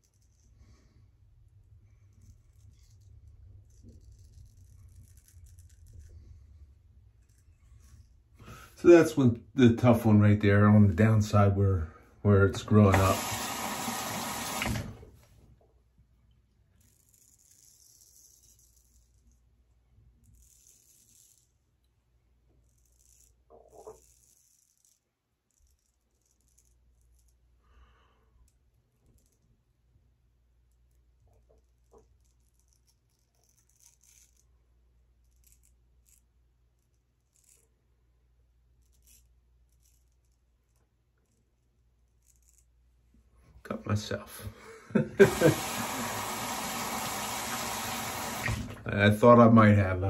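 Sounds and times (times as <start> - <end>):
razor scraping stubble: 2.0 - 8.0, 32.1 - 34.5, 35.2 - 37.7.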